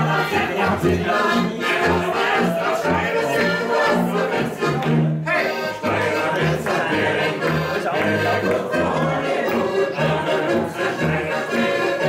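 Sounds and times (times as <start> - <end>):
button accordions playing folk music: 0.0 - 12.0
tuba bass line: 0.0 - 12.0
voices singing along: 0.0 - 12.0.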